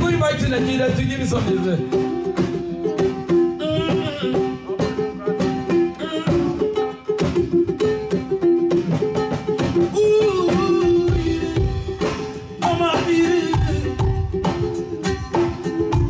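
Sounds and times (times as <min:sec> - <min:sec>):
plucked lute melody: 0:00.0 - 0:16.0.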